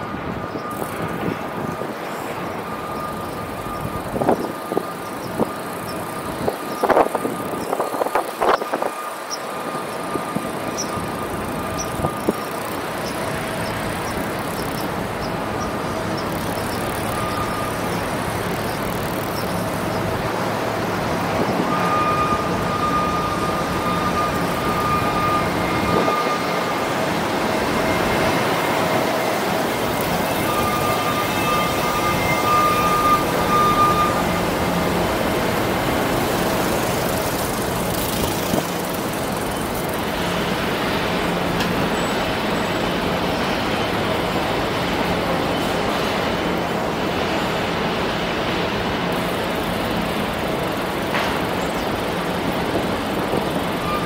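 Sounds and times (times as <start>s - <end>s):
city street traffic: 0.0s - 54.0s.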